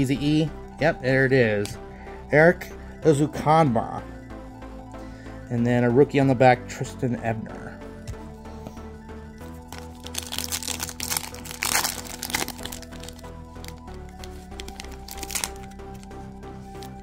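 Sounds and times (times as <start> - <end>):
quiet background music: 0.0 - 17.0
foil pack crinkling: 9.7 - 16.1.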